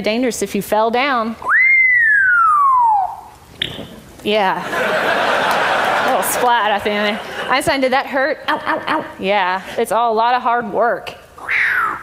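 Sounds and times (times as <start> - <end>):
parrot whistling falling tone: 1.5 - 4.0.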